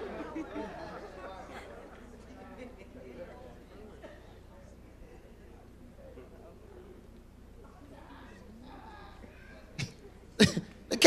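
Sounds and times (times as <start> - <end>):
person coughing: 9.8 - 11.0.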